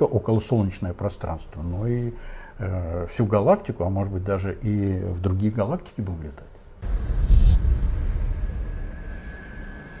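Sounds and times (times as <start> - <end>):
deep rumble: 6.8 - 10.0.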